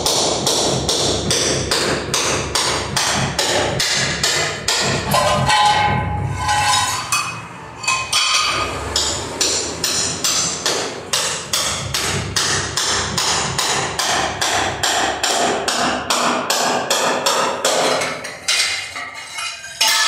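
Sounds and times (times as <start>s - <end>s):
hammer breaking ceramic tiles: 1.2s - 20.0s.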